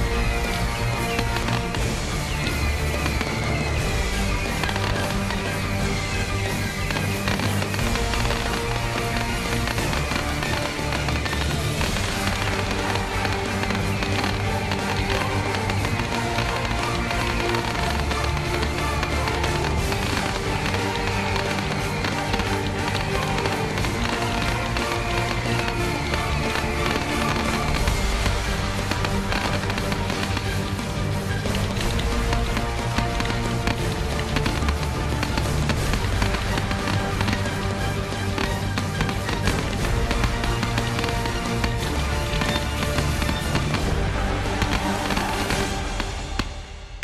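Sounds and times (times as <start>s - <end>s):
fireworks bursts and crackle: 0.0s - 47.0s
loud music soundtrack: 0.0s - 47.0s.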